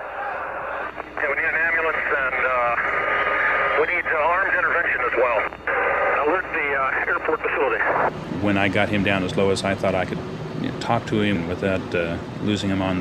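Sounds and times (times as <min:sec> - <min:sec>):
radio hiss: 0:00.0 - 0:08.1
voice over radio: 0:00.4 - 0:08.1.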